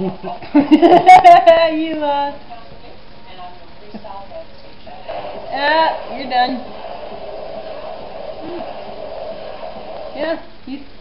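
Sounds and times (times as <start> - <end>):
background noise with hum: 0.0 - 11.0.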